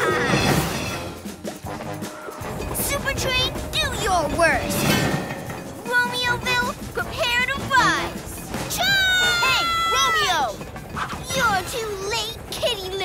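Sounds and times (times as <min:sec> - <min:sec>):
background music: 0:00.0 - 0:13.0
cartoon voices crying out: 0:08.8 - 0:10.5.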